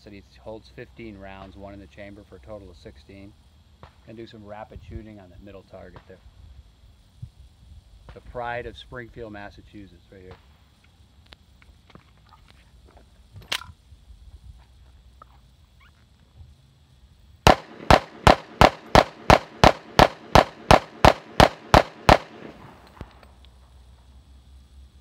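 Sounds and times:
pistol shots: 0:17.4 - 0:23.0.

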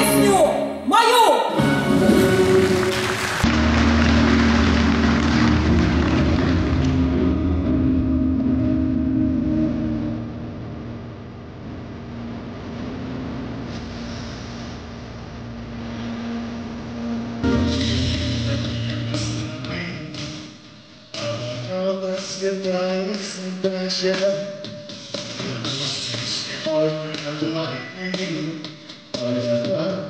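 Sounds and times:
audience applause: 0:01.9 - 0:07.4
steady low tone: 0:02.1 - 0:21.1.

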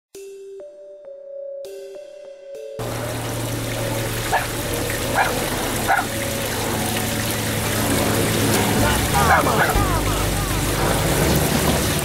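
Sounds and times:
low hum: 0:02.8 - 0:12.0
water running down a drain: 0:02.8 - 0:12.0.

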